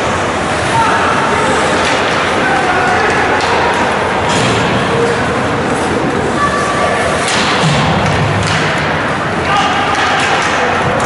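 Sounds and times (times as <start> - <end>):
people shouting: 0.6 - 4.1, 9.4 - 11.0
hockey puck or stick knock: 7.2 - 11.0.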